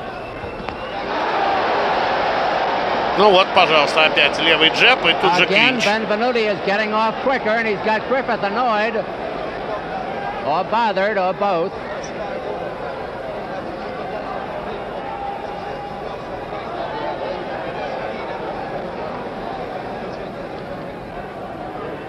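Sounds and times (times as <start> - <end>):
murmur of arena crowd: 0.0 - 22.0
man speaking: 3.2 - 9.0.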